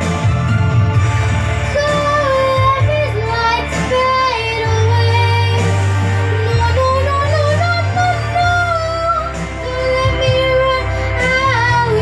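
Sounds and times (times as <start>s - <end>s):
backing track with bass notes: 0.0s - 12.0s
boy singing a slow ballad: 1.4s - 12.0s.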